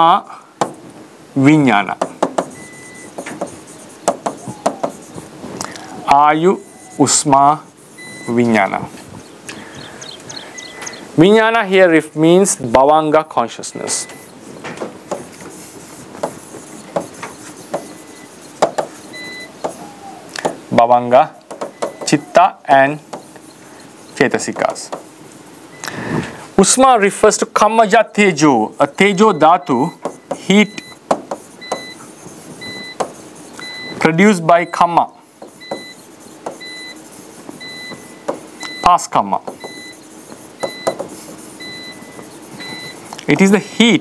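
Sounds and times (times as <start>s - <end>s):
pen tapping on glass screen: 2.0s - 5.0s, 15.1s - 15.6s, 16.2s - 19.0s, 19.6s - 19.8s, 21.4s - 22.2s, 24.4s - 25.1s, 30.0s - 32.0s, 32.7s - 33.2s, 35.4s - 36.7s, 37.5s - 38.8s, 39.4s - 41.4s.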